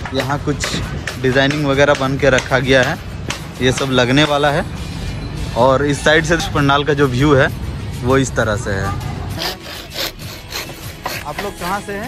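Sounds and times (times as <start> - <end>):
hand saw cutting bamboo: 9.3 - 11.8.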